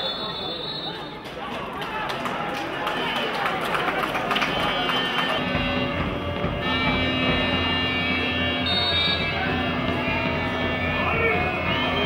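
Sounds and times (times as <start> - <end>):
stadium ambience: 0.0 - 12.0
voices: 0.0 - 12.0
music: 3.8 - 12.0.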